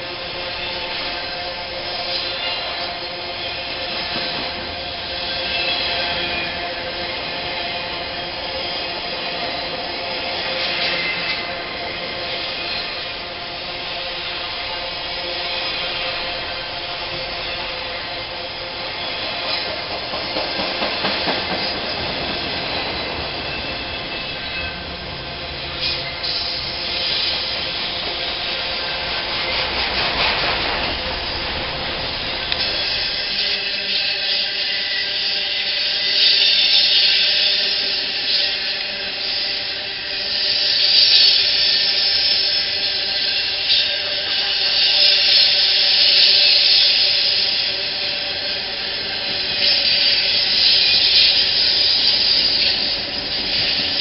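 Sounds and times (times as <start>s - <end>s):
freight train rolling past: 0.0s - 54.0s
wheels clattering on rail: 1.9s - 12.9s, 19.0s - 34.3s.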